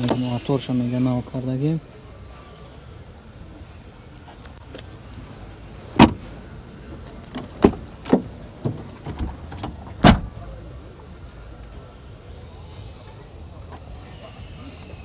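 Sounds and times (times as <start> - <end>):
car door knocks and clunks: 6.0 - 6.2, 7.4 - 10.3
car door latch click: 6.0 - 6.2, 7.3 - 10.3.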